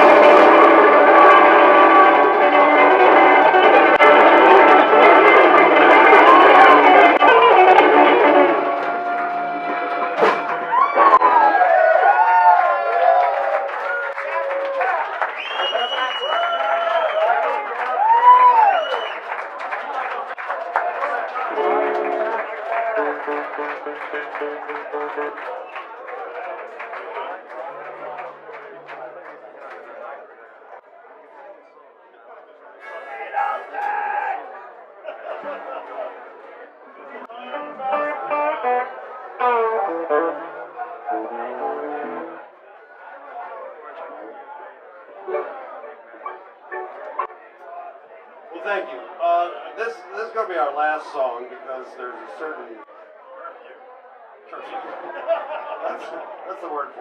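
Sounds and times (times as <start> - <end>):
live blues band playing: 0.0 - 11.4, 21.6 - 25.5, 37.4 - 42.4, 45.2 - 47.4
bending wavering guitar notes: 0.0 - 11.5, 37.3 - 42.4, 45.2 - 47.5.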